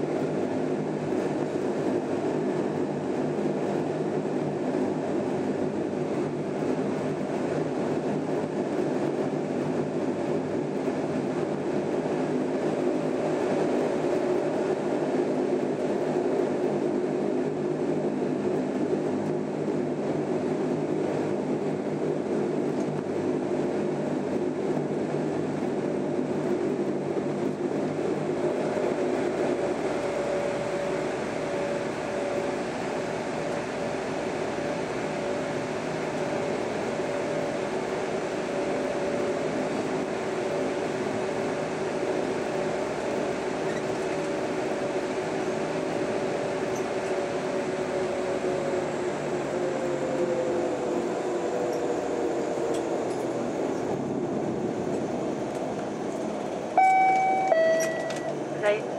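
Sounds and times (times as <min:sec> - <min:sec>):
turboprop engines droning: 0:00.0 - 0:58.9
higher hum: 0:56.8 - 0:58.9.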